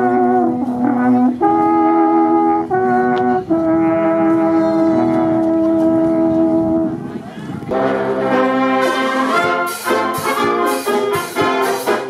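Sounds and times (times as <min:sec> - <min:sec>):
brass ensemble holding a chord: 0:00.0 - 0:07.0, 0:07.7 - 0:12.0.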